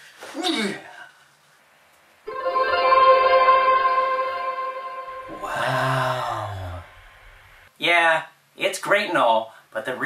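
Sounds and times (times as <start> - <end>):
sustained musical chord: 2.3 - 7.0.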